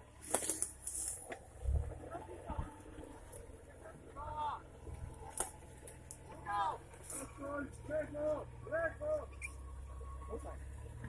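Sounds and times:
vehicle engine running low: 0.0 - 11.0.

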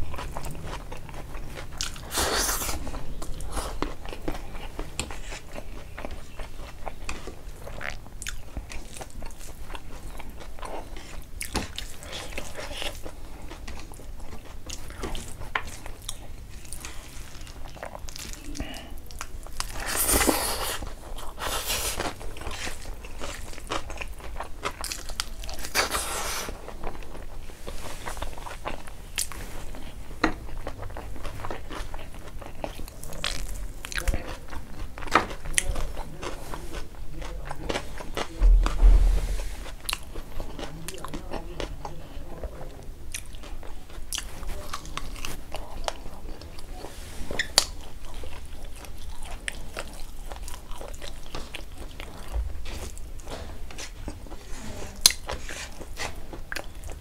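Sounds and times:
person chewing: 0.0 - 41.7, 43.1 - 46.6, 47.3 - 54.4
low thump: 38.4 - 39.7.

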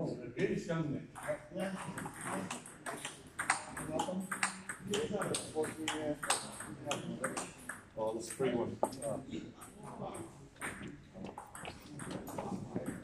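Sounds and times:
people talking indistinctly: 0.0 - 13.0
table tennis balls clicking: 1.2 - 9.0, 10.2 - 13.0.

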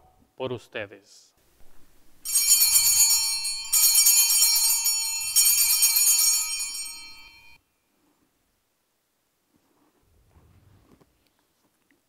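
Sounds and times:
small bells jingling: 2.2 - 7.6.

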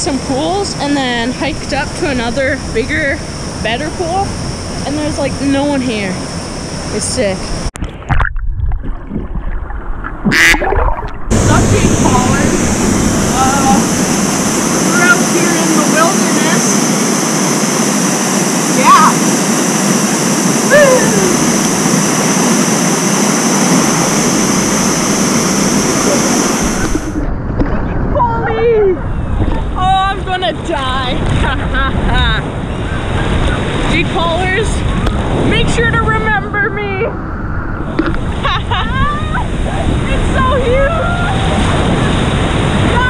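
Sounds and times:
water sloshing and gurgling: 0.0 - 19.1, 21.4 - 43.0
waterfall rushing: 10.4 - 27.2.

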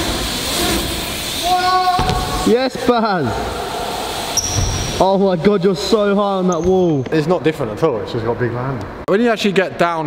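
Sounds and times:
bike tyres rolling over ramps: 0.0 - 2.8, 3.4 - 5.0
person shouting: 1.4 - 2.4.

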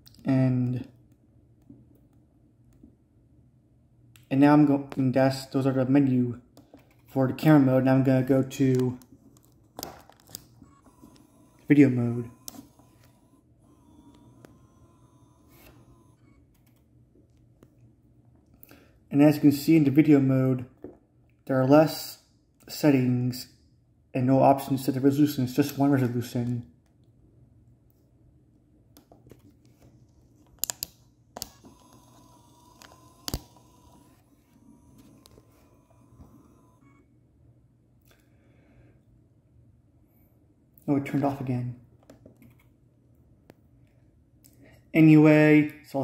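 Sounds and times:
thin steady whine: 4.4 - 20.8, 27.6 - 37.4.

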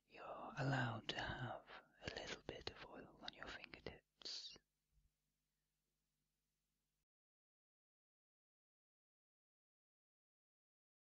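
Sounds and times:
soft whispering: 0.1 - 4.6.

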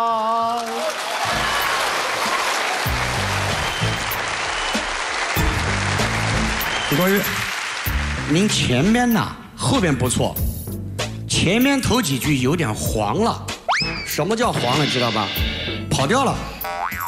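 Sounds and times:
man singing opera: 0.0 - 0.9
applause: 0.1 - 9.1
music playing: 1.0 - 17.0.

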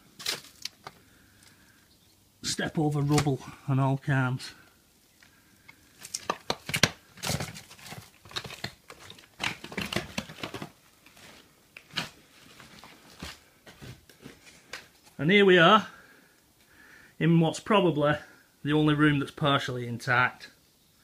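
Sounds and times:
footsteps crunching over rubble: 5.2 - 15.2.

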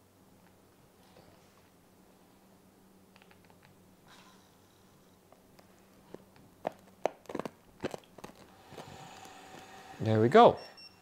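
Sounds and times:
hard candy crunching: 6.1 - 9.6.

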